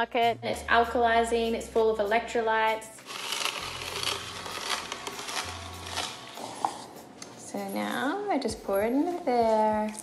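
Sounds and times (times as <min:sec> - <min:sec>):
crackling grinding: 0:03.0 - 0:06.9
juicer motor hum: 0:03.1 - 0:06.7.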